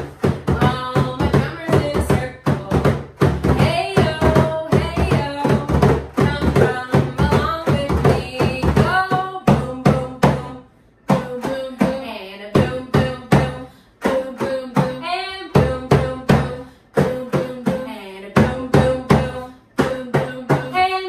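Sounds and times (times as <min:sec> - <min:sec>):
hand drums: 0:00.0 - 0:12.0
woman singing: 0:00.0 - 0:21.0.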